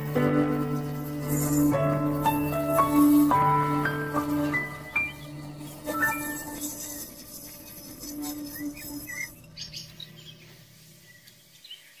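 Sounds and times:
instrumental song held note: 0.0 - 10.0
bird chirps: 7.6 - 12.0.

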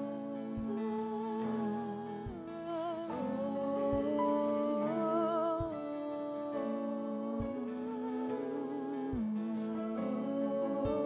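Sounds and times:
keyboard and guitar chords: 0.0 - 11.0
person singing wordless notes: 0.0 - 11.0
soft low beat: 0.0 - 11.0.

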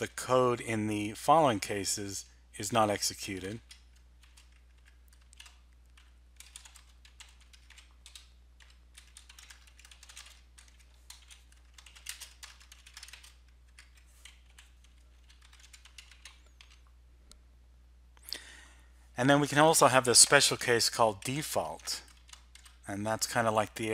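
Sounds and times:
low steady hum: 0.0 - 23.9
computer keyboard typing: 3.3 - 16.9, 20.9 - 22.9.

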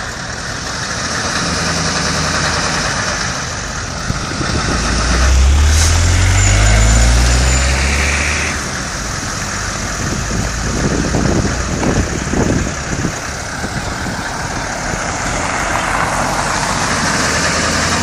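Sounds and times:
truck engines: 0.0 - 18.0
vehicle passing close: 1.6 - 18.0.

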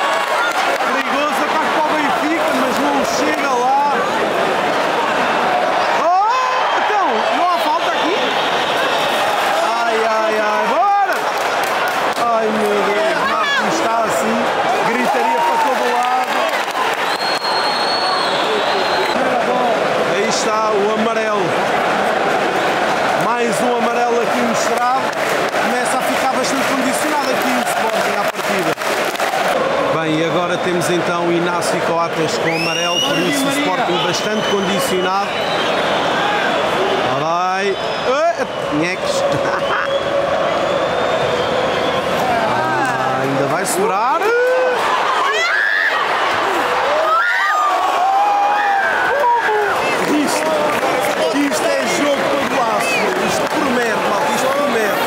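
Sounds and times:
stadium crowd shouting: 0.0 - 55.0
short shrill whistle: 17.1 - 19.2.

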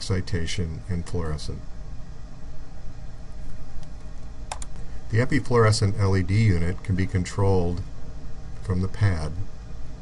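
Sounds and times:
low room hum: 0.0 - 10.0
quick clicks: 4.5 - 4.8.

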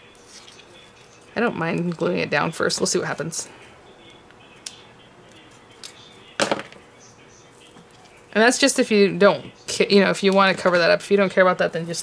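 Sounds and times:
card stock and pen handling: 0.2 - 2.0.

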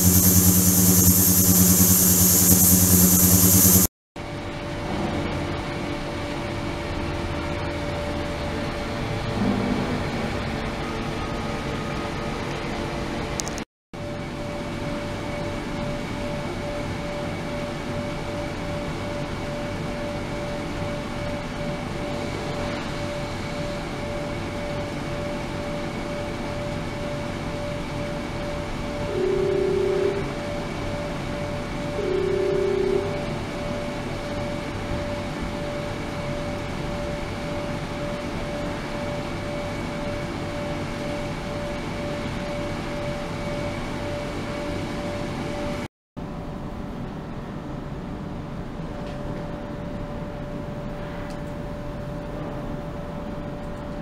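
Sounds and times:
hiss of cavitating water: 0.0 - 3.9
hum-like tone: 0.0 - 3.9, 29.0 - 30.4, 31.8 - 33.8.

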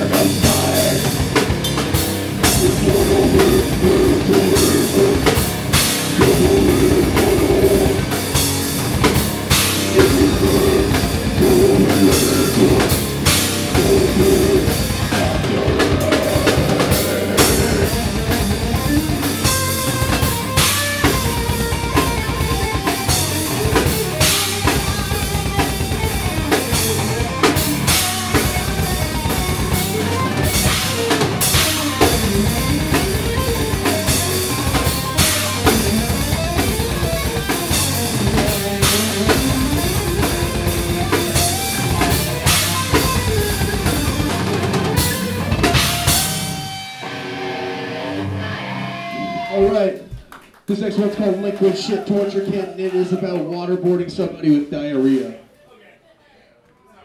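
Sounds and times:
fast drum kit: 0.0 - 46.9
heavy metal band playing: 0.0 - 49.9.

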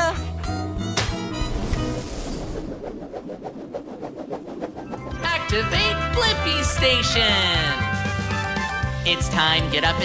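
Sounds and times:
fluttering whir: 1.4 - 5.6.

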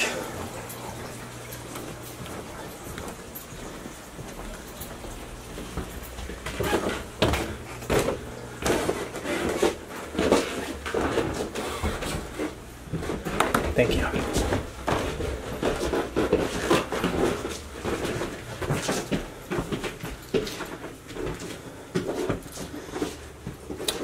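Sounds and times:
footsteps climbing stairs: 0.0 - 24.0.

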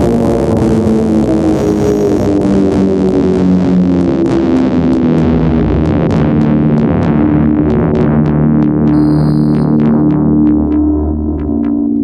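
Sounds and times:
low bass line: 8.9 - 11.3
held synthesizer notes: 9.0 - 10.0.

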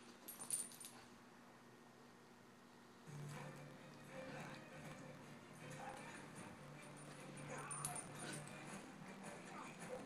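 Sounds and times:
faint steady hum: 0.0 - 10.0
light jingle: 0.2 - 1.0, 3.4 - 8.9.

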